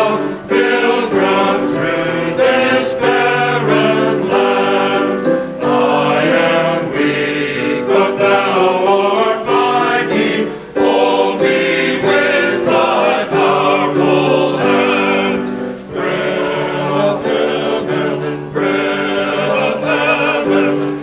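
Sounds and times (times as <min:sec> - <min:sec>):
men's choir singing a hymn: 0:00.0 - 0:21.0
piano accompaniment: 0:00.0 - 0:21.0.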